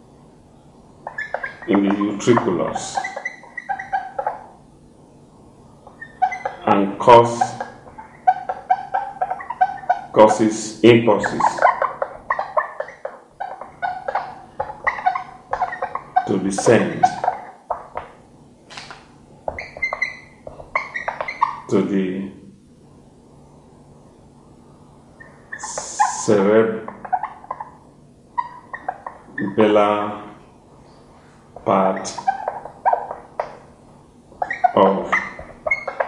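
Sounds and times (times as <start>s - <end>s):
marker squeaking on whiteboard: 1.0s - 4.6s, 5.8s - 21.7s, 25.2s - 27.8s, 28.4s - 29.6s, 31.6s - 36.0s
person speaking: 1.5s - 3.2s, 6.5s - 7.8s, 10.1s - 11.8s, 16.2s - 17.4s, 25.6s - 27.0s, 31.6s - 32.4s, 34.5s - 35.4s.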